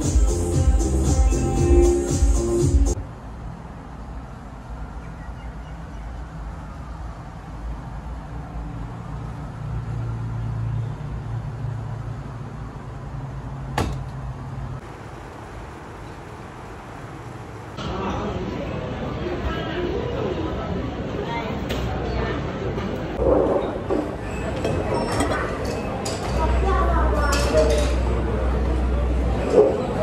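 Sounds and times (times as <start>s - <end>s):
washing machine door opening: 13.8s - 14.2s.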